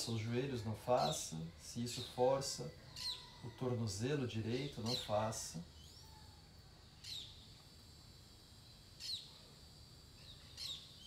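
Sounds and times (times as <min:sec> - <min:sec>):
faint background noise: 0:00.0 - 0:11.0
bird chirping downward: 0:01.9 - 0:03.6, 0:04.6 - 0:07.6, 0:09.0 - 0:09.3, 0:10.2 - 0:11.0.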